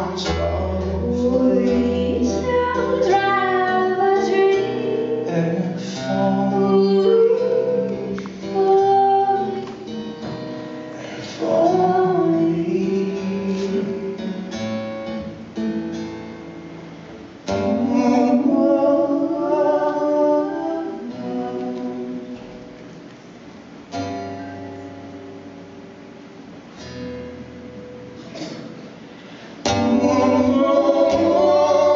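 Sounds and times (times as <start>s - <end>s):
person singing: 0.0s - 9.9s, 11.0s - 14.4s, 29.7s - 31.9s
acoustic guitar playing: 0.0s - 31.9s.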